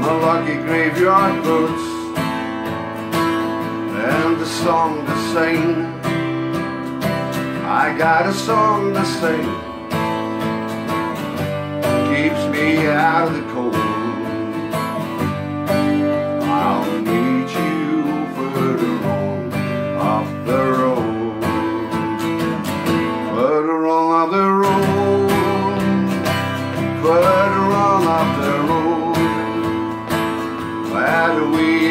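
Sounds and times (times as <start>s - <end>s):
man singing: 0.0s - 2.4s, 3.4s - 10.0s, 11.7s - 15.1s, 15.7s - 31.9s
acoustic guitar strumming: 0.0s - 31.9s.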